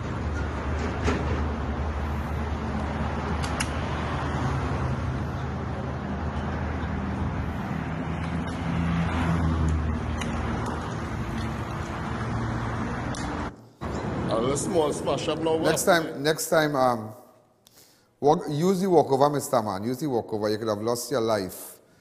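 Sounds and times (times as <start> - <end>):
roadside traffic noise: 0.0 - 20.9.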